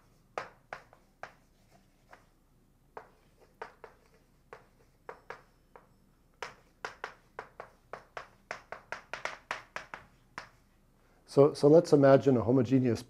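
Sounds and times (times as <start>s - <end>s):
chalk tapping on blackboard: 0.0s - 10.8s.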